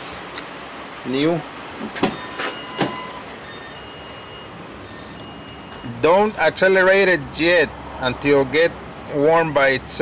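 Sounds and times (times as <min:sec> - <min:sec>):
thin high whine: 0:02.0 - 0:06.6.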